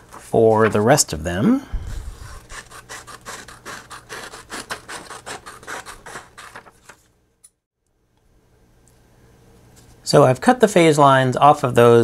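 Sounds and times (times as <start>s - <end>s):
scissors cutting paper: 2.0s - 7.0s.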